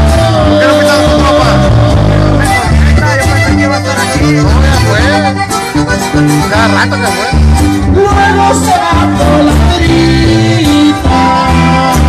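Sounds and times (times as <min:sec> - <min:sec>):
bass line: 0:00.0 - 0:12.0
button accordion melody: 0:00.0 - 0:12.0
guitar: 0:00.0 - 0:12.0.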